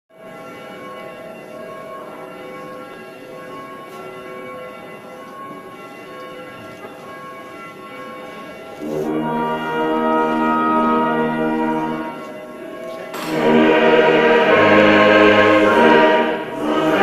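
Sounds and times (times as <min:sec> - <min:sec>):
church bells ringing: 0:00.1 - 0:17.0.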